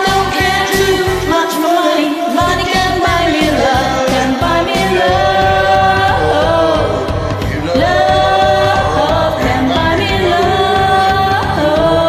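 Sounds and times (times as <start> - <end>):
karaoke backing track: 0.0 - 12.0
woman and man singing duet: 0.0 - 12.0.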